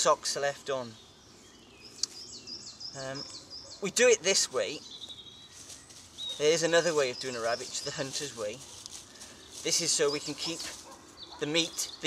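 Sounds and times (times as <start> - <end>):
small bird singing: 0.0 - 12.0.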